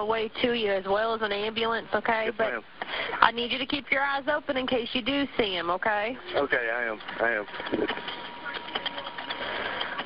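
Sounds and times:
telephone line hiss: 0:05.6 - 0:10.0.

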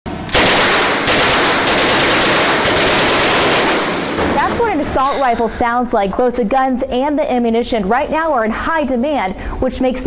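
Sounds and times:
rapid rifle fire: 0:00.3 - 0:04.4.

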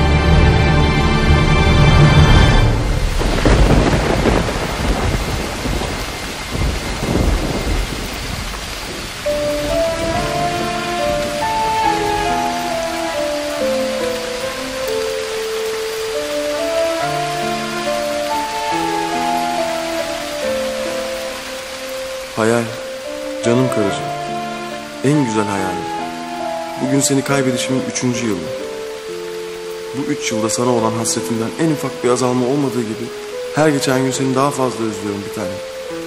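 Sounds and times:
heavy rain: 0:00.0 - 0:36.0
thunder rumbling: 0:01.6 - 0:23.4
slow melody of held notes: 0:08.8 - 0:36.0.

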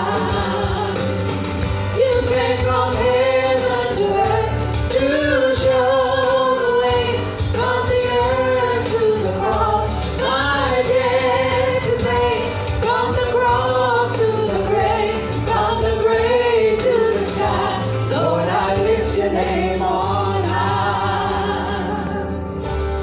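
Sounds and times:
man and woman singing gospel: 0:00.0 - 0:22.5
instrumental accompaniment with bass: 0:00.0 - 0:23.0.

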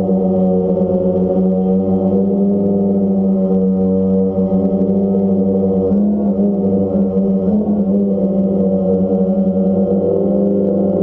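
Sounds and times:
drone propellers humming: 0:00.0 - 0:11.0.

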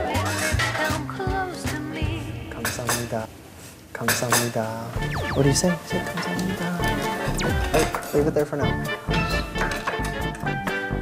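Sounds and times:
background music: 0:00.0 - 0:03.3, 0:04.3 - 0:11.0.

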